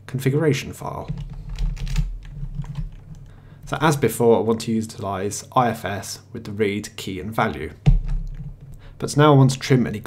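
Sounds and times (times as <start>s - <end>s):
computer keyboard typing: 1.1s - 3.3s.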